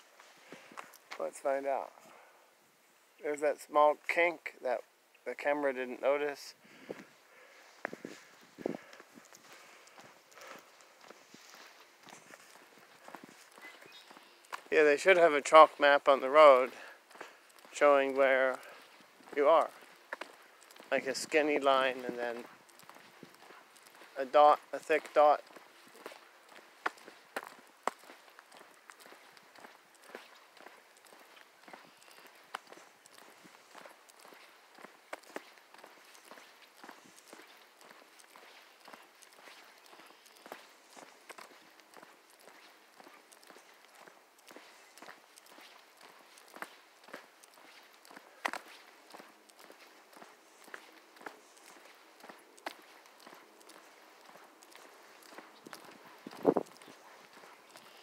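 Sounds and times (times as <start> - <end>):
footsteps on asphalt: 0.0 - 3.1, 3.9 - 58.0.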